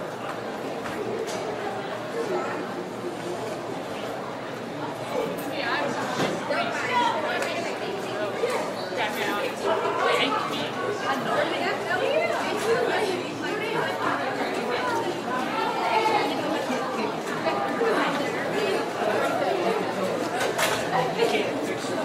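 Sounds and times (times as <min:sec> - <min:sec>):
many voices chattering: 0:00.0 - 0:22.0.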